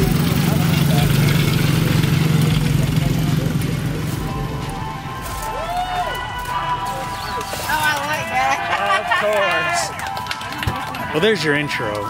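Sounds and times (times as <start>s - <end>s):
crowd voices hubbub: 0.0s - 12.0s
small atv engines running: 0.0s - 12.0s.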